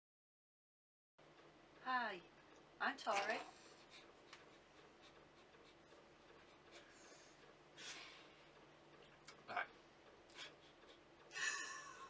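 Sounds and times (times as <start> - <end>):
low steady hum: 1.2 - 12.0.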